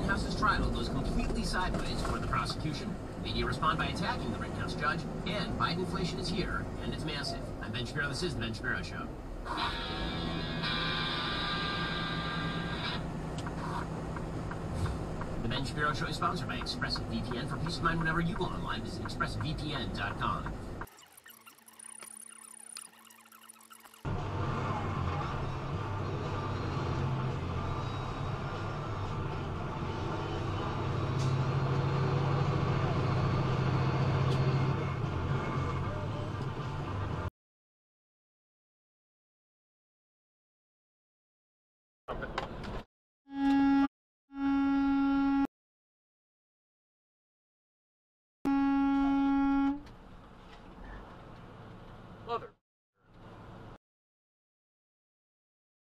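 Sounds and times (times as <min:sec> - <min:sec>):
engine drone inside vehicle: 0:00.0 - 0:20.9
road noise: 0:00.0 - 0:21.0, 0:23.9 - 0:37.3, 0:42.1 - 0:42.8, 0:48.9 - 0:53.8
truck air horn blast: 0:43.3 - 0:45.5, 0:48.5 - 0:49.8.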